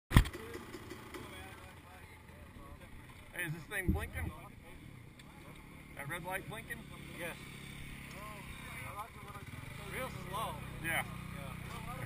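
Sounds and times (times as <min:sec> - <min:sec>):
dirt bike engines idling: 0:00.1 - 0:12.0
people talking: 0:00.3 - 0:07.4, 0:08.1 - 0:12.0.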